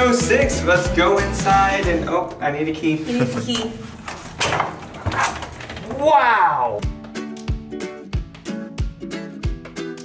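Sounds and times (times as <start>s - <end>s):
door being pushed open: 3.7s - 6.2s.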